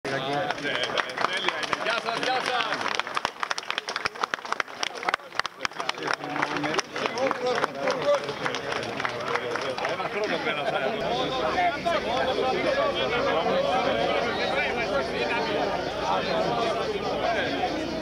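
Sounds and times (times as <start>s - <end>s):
crowd talking: 0.0s - 18.0s.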